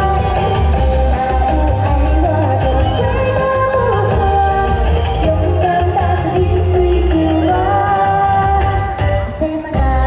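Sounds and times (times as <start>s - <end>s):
backing track with bass beat: 0.0s - 10.0s
girl singing into a microphone: 0.0s - 10.0s.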